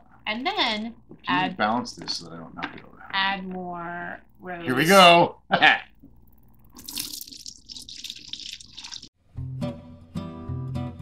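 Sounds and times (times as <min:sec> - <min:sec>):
liquid pouring and gurgling: 0:06.6 - 0:09.1.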